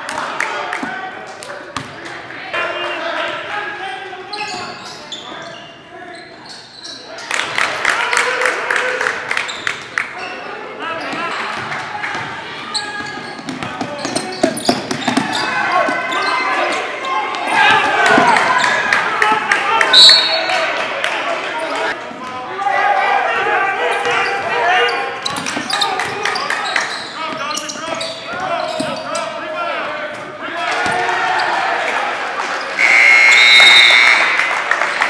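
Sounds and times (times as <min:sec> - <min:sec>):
players and spectators calling out: 0:00.0 - 0:35.0.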